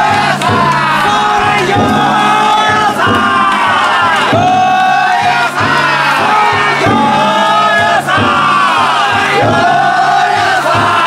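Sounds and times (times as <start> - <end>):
big drum beating: 0.0 - 11.0
group chanting in unison: 0.0 - 11.0.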